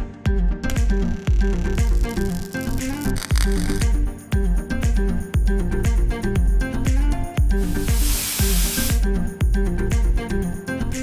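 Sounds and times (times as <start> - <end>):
background music with beat: 0.0 - 11.0
spray gun hissing: 7.6 - 9.0.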